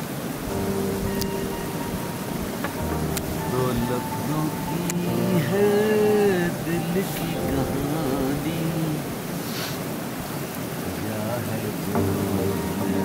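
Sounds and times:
steady rushing hiss: 0.0 - 13.0
voices talking: 1.2 - 9.7, 10.8 - 13.0.

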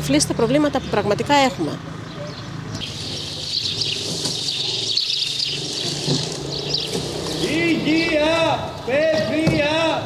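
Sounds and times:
small birds chirping: 0.1 - 8.9.

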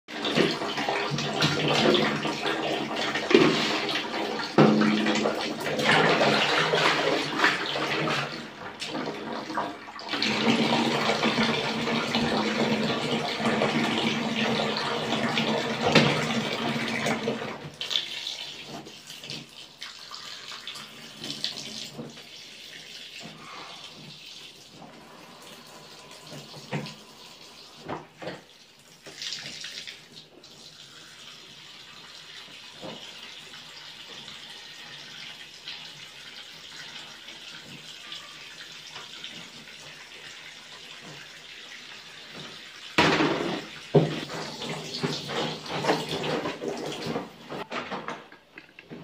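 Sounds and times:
tap water pouring into basin: 0.1 - 49.0.

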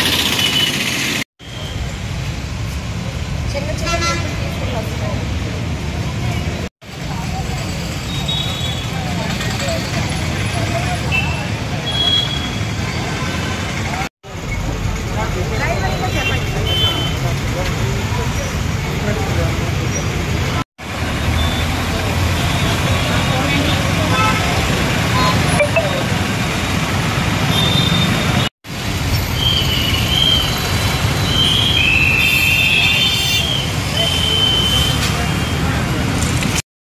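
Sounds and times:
rumble of passing vehicles: 0.0 - 36.6.

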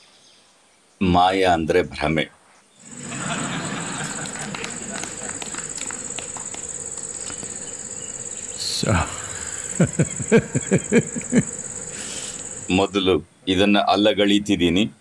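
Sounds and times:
night insects chirring: 2.8 - 13.0
man laughing: 2.9 - 6.1, 8.8 - 12.7.

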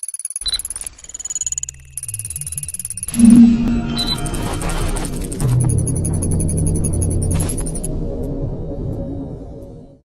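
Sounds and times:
high electronic beeps: 3.1 - 4.7
low stepping electronic tones: 3.1 - 5.0
stuttering digital pulse: 3.1 - 5.7.

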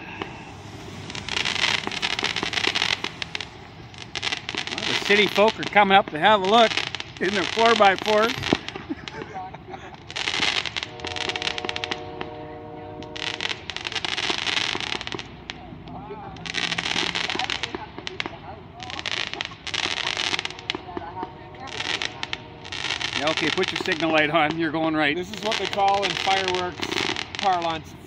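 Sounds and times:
fireworks crackling bursts: 0.0 - 28.0.

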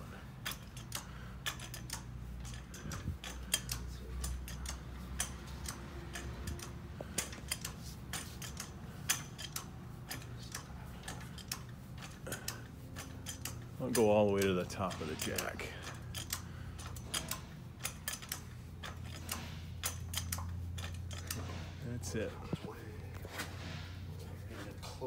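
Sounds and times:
low hum of machinery: 0.0 - 25.0
light metallic clicks: 0.4 - 21.7.

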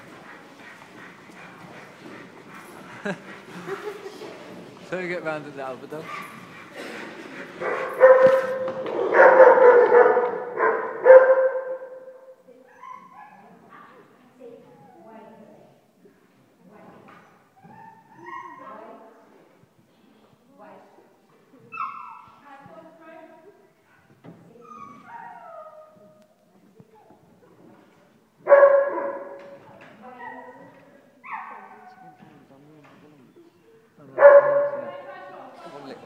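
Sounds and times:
dog whining: 24.6 - 26.1.

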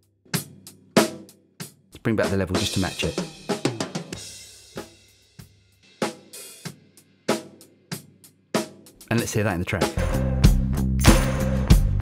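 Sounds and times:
drum kit playing: 0.0 - 12.0.

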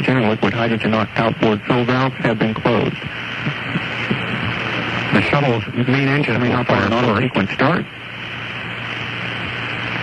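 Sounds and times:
faint low hum: 0.0 - 10.0
radio broadcast hiss: 0.0 - 10.0.

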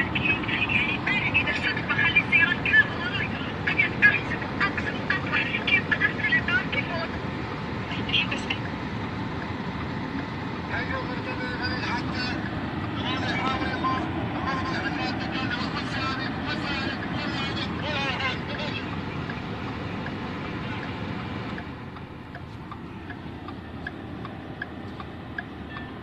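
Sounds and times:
car engine and road noise: 0.0 - 26.0
turn signal clicking: 8.4 - 10.7, 11.6 - 13.6, 16.9 - 26.0.

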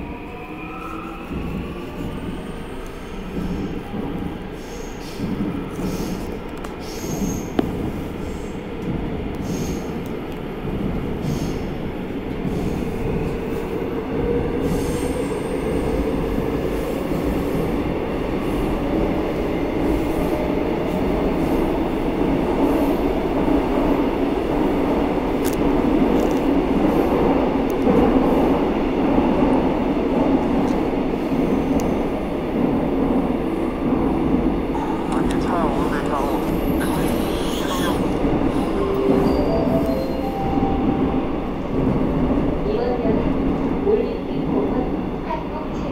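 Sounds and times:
subway train rumble: 0.0 - 45.9.

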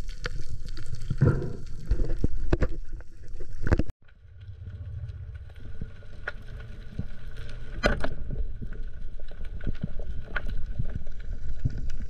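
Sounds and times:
low underwater rush: 0.0 - 12.0
small underwater clicks: 0.0 - 12.0.

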